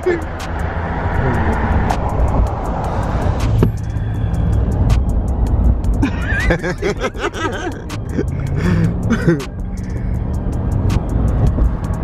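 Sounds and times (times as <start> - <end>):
tyre and engine rumble: 0.0 - 12.0
wind hiss: 0.2 - 7.5.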